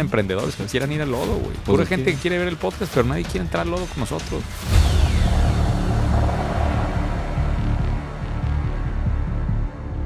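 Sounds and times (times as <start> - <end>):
falling sweep: 4.6 - 9.3
pulsing bass rumble: 4.6 - 10.0.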